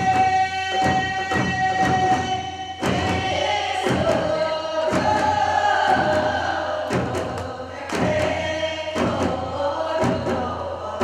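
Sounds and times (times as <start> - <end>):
barrel drums struck with sticks: 0.0 - 11.0
women and children singing: 0.0 - 11.0.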